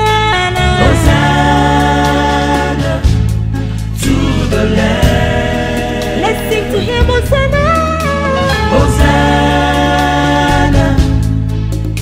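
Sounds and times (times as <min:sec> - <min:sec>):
gospel worship music: 0:00.0 - 0:12.0
low bass: 0:00.0 - 0:12.0.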